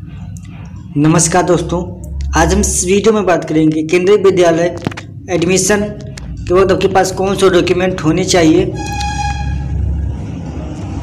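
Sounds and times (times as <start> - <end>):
high-pitched horn toot: 8.6 - 10.1.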